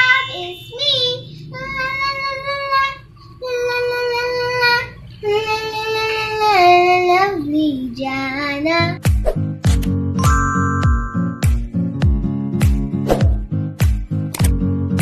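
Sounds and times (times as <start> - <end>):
girl singing: 0.0 - 9.0.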